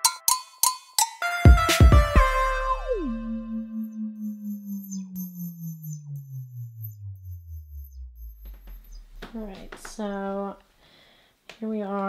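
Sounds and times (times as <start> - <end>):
low synthesizer tone with wobble: 2.2 - 10.2
faint high sweeping tones: 3.2 - 10.2.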